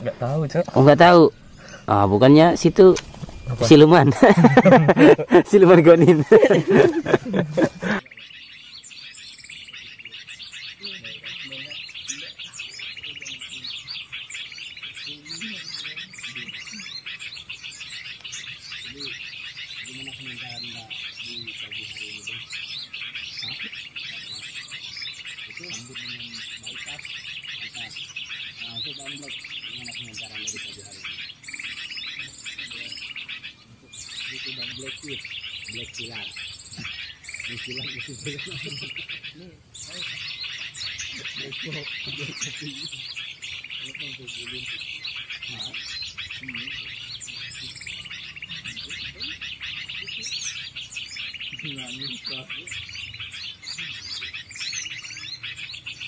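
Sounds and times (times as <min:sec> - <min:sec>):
small birds twittering: 0:00.0 - 0:56.0
faint voices: 0:09.4 - 0:56.0.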